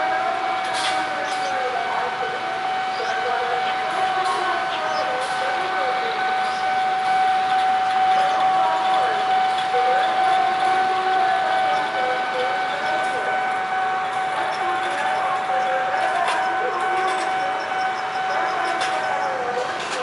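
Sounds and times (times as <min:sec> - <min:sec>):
locomotive high-pitched whine: 0:00.0 - 0:20.0
train running: 0:00.0 - 0:20.0.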